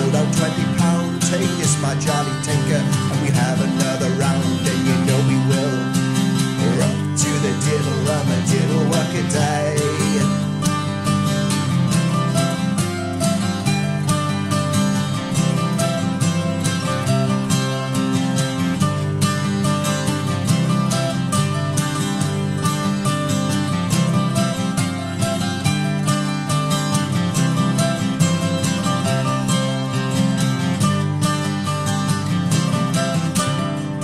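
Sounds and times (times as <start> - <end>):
acoustic guitar folk tune: 0.0 - 34.0.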